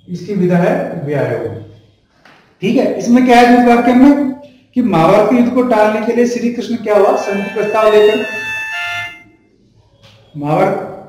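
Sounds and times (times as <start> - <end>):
man's voice drawing out a syllable: 7.0 - 8.5.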